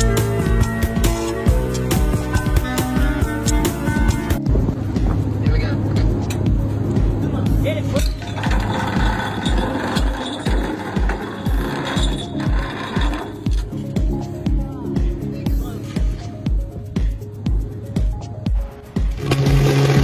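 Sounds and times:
background music with low beat: 0.0s - 20.0s.

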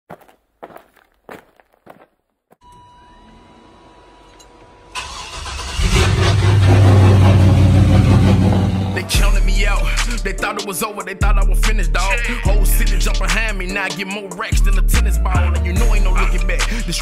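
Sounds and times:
car engine starting and running: 3.1s - 9.8s.

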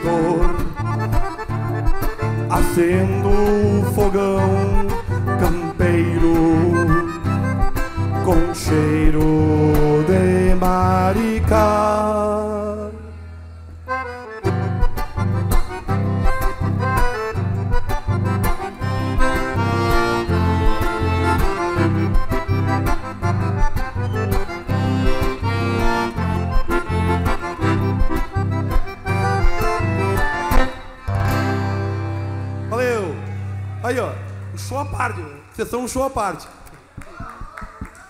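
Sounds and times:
button accordion folk melody: 0.0s - 33.2s
acoustic guitar accompanying: 0.0s - 33.8s.

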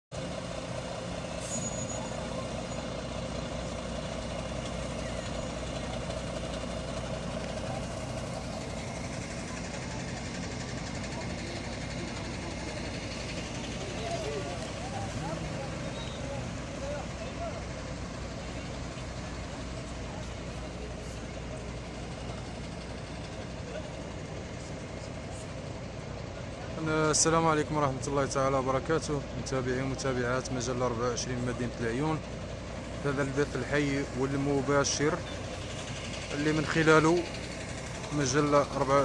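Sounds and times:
diesel truck engines running: 0.1s - 39.0s
indistinct voices: 7.5s - 32.2s.

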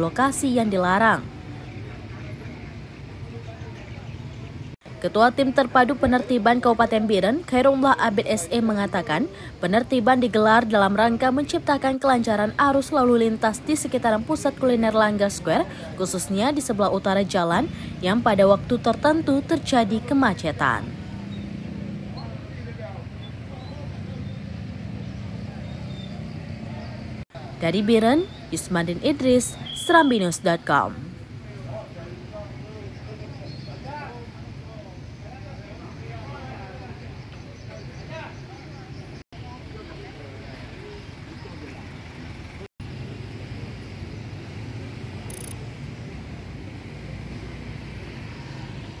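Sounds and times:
faint crowd voices: 0.0s - 28.7s
motorbike and car engines humming: 0.0s - 29.8s, 39.0s - 49.0s.

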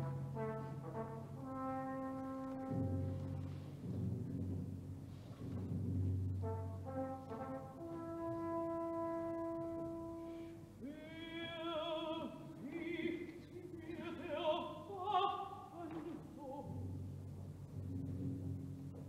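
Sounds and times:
orchestra brass chords: 0.0s - 4.2s, 5.8s - 10.8s.

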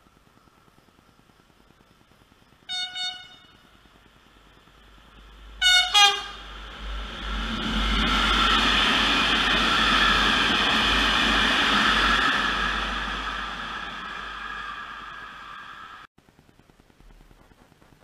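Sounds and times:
locomotive horn blasts: 2.7s - 3.6s, 5.6s - 6.6s
freight train rumbling past: 4.1s - 16.1s.

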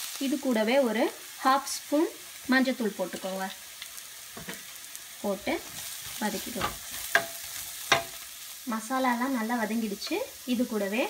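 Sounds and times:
steady sizzle: 0.0s - 11.0s
spoon stirring and scraping pan: 3.1s - 8.6s
spoon tapping on pan: 6.6s - 8.2s.

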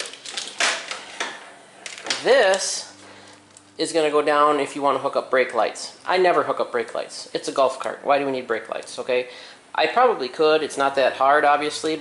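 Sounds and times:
wiring harness rustling: 0.0s - 3.7s.

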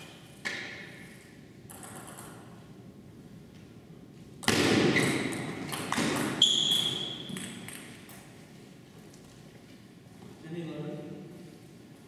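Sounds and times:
short high squeak: 6.4s - 7.3s.

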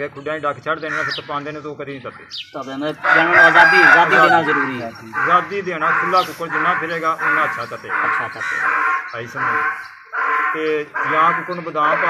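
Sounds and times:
man's voice: 0.0s - 9.7s, 10.5s - 12.0s
rooster crowing: 2.9s - 12.0s.

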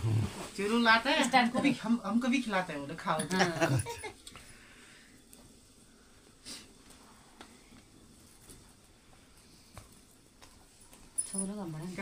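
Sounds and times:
wood fire crackling: 0.0s - 12.0s.

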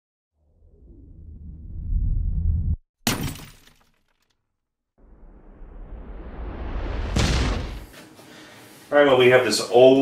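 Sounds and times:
low rumble: 0.4s - 2.8s, 5.0s - 8.0s
rising whoosh: 5.0s - 8.0s
sudden crash: 5.0s - 8.1s.

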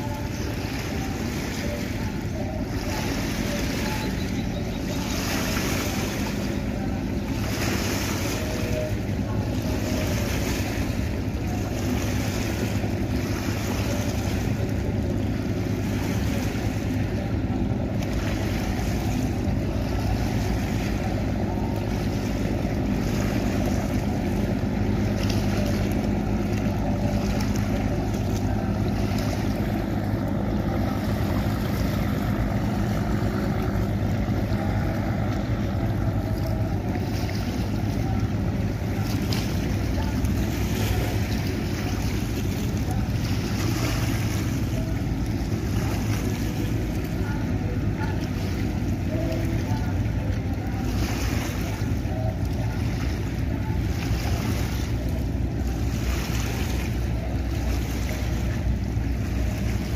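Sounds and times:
boat engines droning: 0.0s - 59.9s
moving water: 0.0s - 59.9s.

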